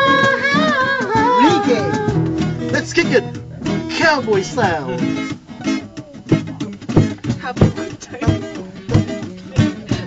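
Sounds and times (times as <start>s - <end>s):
guitar strumming: 0.0s - 10.0s.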